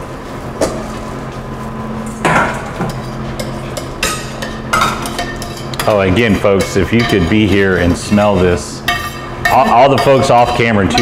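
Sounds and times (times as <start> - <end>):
steady low hum: 0.0 - 11.0
steel cookware clanking: 2.8 - 11.0.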